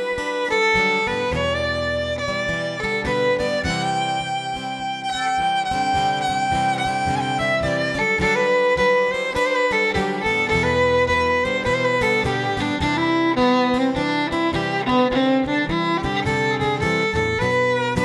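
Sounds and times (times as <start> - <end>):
fiddle bowed notes: 0.0 - 18.0
strummed acoustic guitar: 0.0 - 18.0.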